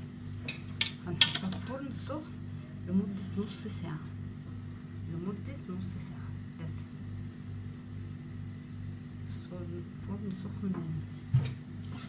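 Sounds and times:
low pulsing hum: 0:00.0 - 0:11.8.

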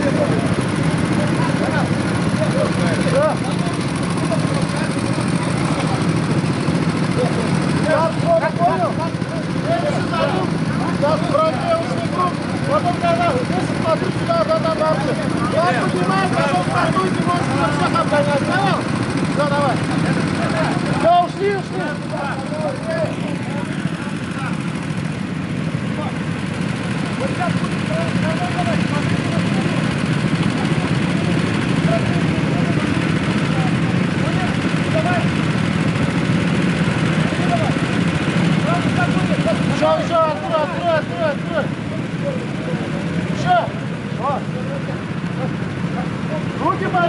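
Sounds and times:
go-kart engines idling: 0:00.0 - 0:47.0
voices calling: 0:00.0 - 0:47.0.

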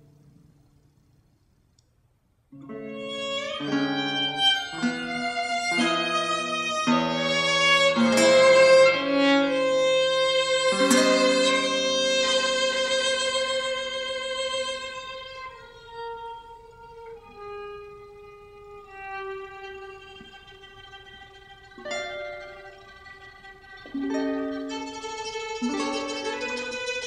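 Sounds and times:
guitar chords: 0:02.5 - 0:27.0
sustained violin notes: 0:02.6 - 0:27.0.

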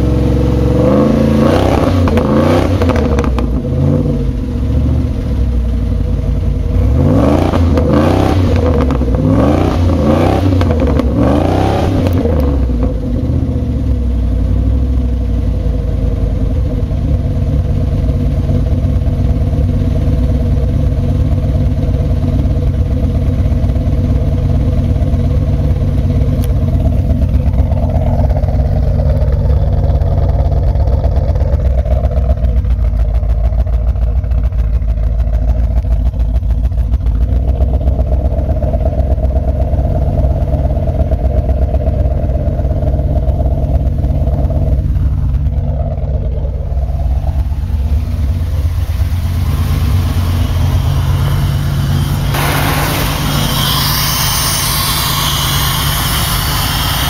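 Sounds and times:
car engine revving and idling: 0:00.0 - 0:57.0.

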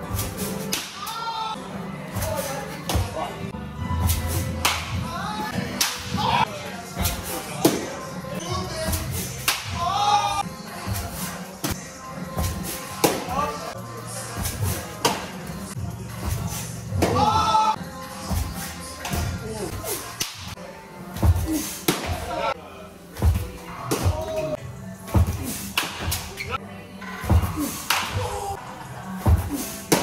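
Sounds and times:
music: 0:00.0 - 0:30.0
voices: 0:00.2 - 0:30.0
baseball sharp crack: 0:00.7 - 0:01.2, 0:04.6 - 0:05.0, 0:05.8 - 0:06.2, 0:09.4 - 0:09.8, 0:13.0 - 0:13.3, 0:20.2 - 0:20.6, 0:27.8 - 0:28.2
baseball hitting catcher's mitt: 0:13.0 - 0:13.3, 0:21.2 - 0:22.3, 0:25.1 - 0:26.3, 0:29.2 - 0:30.0.

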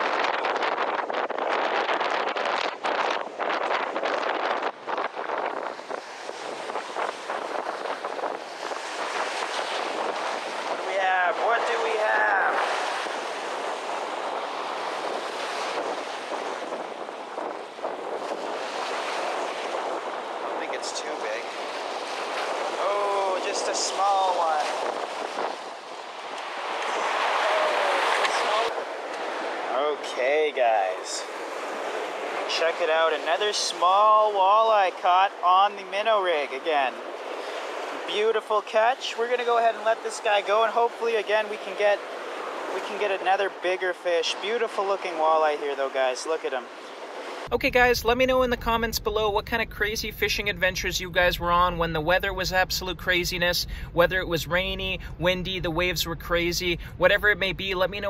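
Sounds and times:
wind buffeting microphone: 0:00.0 - 0:29.7, 0:47.0 - 0:58.0
waves breaking on rocks: 0:00.0 - 0:58.0.

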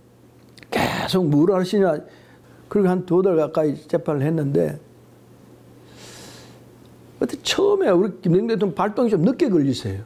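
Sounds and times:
low room tone hum: 0:00.0 - 0:10.0
man breathing in through nose: 0:05.8 - 0:06.6.

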